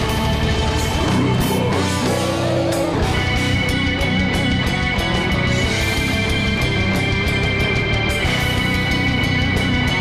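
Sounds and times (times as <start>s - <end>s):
metal band playing live: 0.0s - 10.0s.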